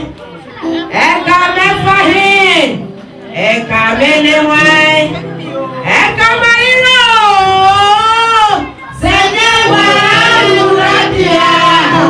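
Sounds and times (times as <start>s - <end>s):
woman singing into a microphone: 6.1s - 12.0s.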